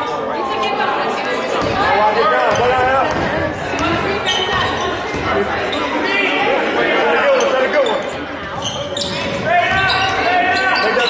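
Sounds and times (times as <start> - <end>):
voices calling out: 1.7 - 11.0.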